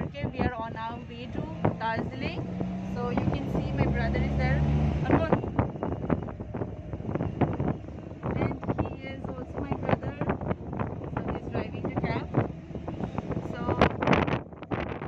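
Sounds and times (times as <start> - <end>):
people talking: 0.0 - 5.6, 8.3 - 10.4, 11.1 - 12.4, 13.4 - 14.0
vehicle engine droning: 0.0 - 15.0.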